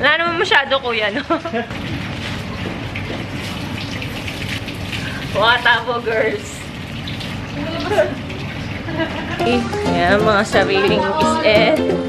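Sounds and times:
water pouring and splashing: 1.7s - 10.8s.

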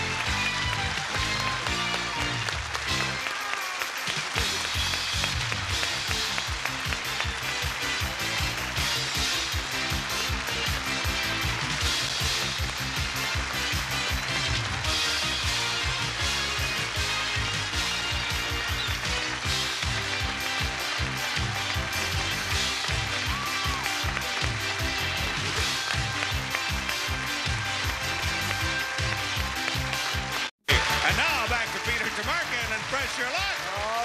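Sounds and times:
audience applauding: 0.0s - 34.0s
game show music: 0.0s - 34.0s.

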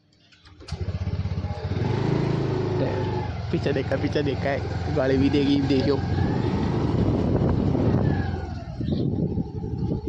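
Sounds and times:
road noise: 0.0s - 10.0s
car engine running: 0.7s - 10.0s.

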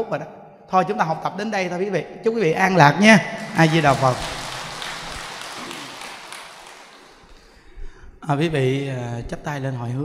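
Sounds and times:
audience applauding: 3.4s - 7.7s.

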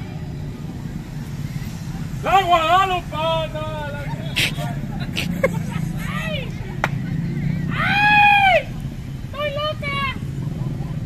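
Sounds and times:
cars passing: 0.0s - 11.0s
faint voices: 0.0s - 11.0s.

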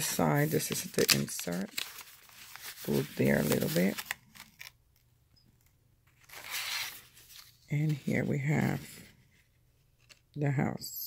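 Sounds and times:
paper and card handled: 0.0s - 10.3s.

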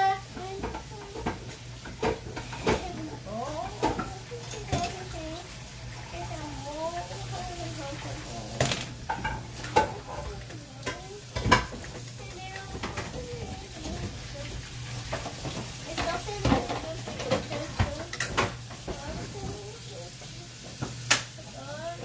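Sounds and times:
faint voices: 2.1s - 8.9s.

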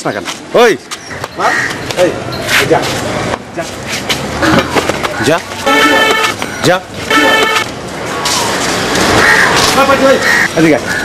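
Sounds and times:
road traffic rushing: 0.0s - 11.0s
vehicle horn honking: 5.6s - 6.4s, 7.1s - 7.7s.

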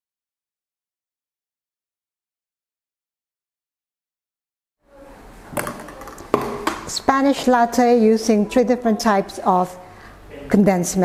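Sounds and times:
glasses knocking on countertop: 5.6s - 6.9s.

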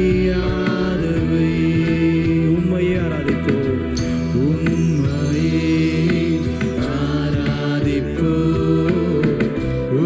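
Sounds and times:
bass guitar: 0.0s - 10.0s
keyboard: 0.0s - 10.0s
people singing: 0.0s - 10.0s.

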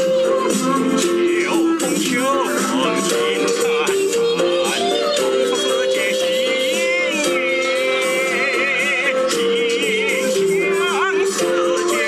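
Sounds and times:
instrumental accompaniment: 0.0s - 12.0s
person singing with vibrato: 0.0s - 12.0s.

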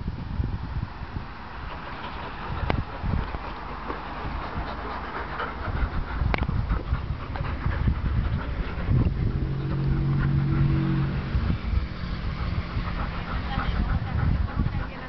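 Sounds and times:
dog panting: 1.6s - 10.7s, 11.8s - 15.0s
low steady drone: 4.4s - 15.0s.

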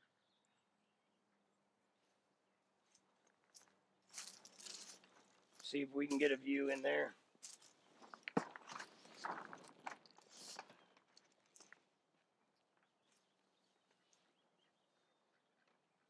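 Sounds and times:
plastic sheeting crinkling: 4.1s - 6.2s.

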